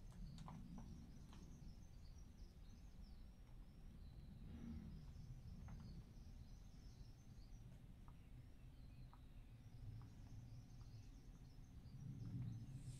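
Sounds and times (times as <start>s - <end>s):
faint bird chirps: 0.1s - 12.9s.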